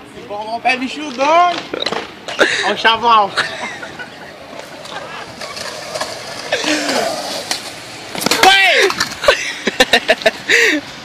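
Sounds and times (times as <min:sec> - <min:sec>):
voices calling out: 0:00.0 - 0:09.7
skateboard wheels rolling on concrete: 0:00.0 - 0:11.0.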